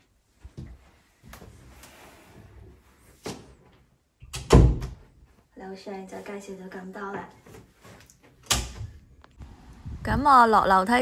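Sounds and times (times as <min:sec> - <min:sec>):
door shutting with a thud: 0:04.3 - 0:05.0.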